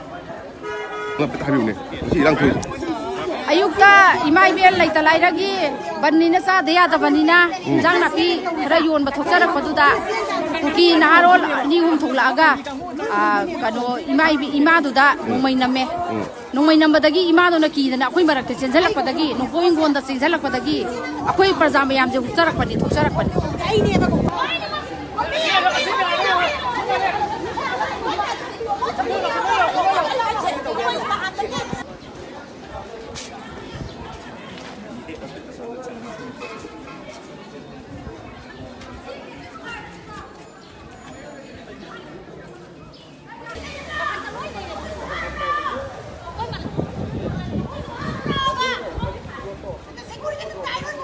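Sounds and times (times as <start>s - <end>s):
people chattering: 0.0s - 51.0s
people talking over one another: 0.0s - 51.0s
woman speaking: 3.5s - 24.2s.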